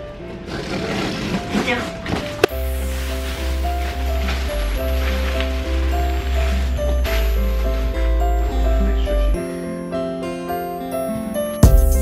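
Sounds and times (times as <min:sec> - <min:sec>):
background music with strong bass: 0:02.4 - 0:09.6, 0:11.6 - 0:12.0.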